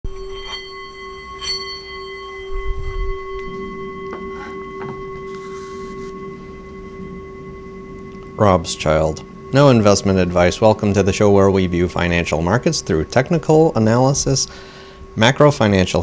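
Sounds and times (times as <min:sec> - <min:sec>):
mallet tapping singing bowl: 0:00.1 - 0:16.0
singing bowl ringing: 0:00.1 - 0:16.0.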